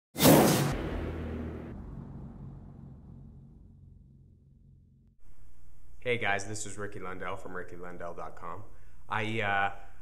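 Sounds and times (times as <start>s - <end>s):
loud whoosh: 0.2s - 5.2s
low rumble: 0.7s - 5.8s.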